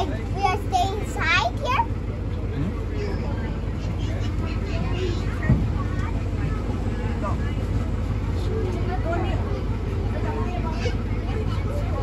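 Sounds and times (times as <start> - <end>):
faint voices: 0.0 - 12.0
train low rumble: 0.0 - 12.0.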